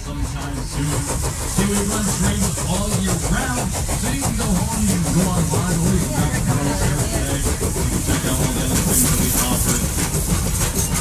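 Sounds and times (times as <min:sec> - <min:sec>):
train rumbling and rattling: 0:00.0 - 0:11.0.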